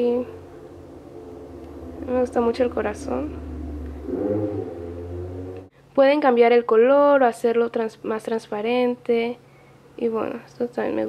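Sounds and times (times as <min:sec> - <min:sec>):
steady low hum: 0:00.0 - 0:06.2.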